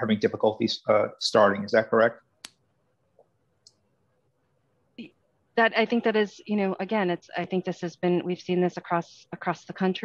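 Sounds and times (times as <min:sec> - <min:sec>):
man speaking: 0:00.0 - 0:02.2.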